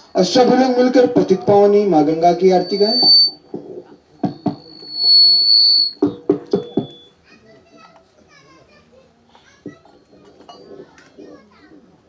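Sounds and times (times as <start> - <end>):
high feedback squeal: 2.1 - 7.2.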